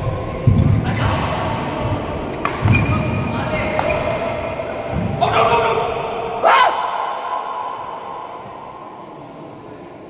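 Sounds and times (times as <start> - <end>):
murmur of voices: 0.0 - 10.0
rackets striking shuttlecock: 2.3 - 3.0.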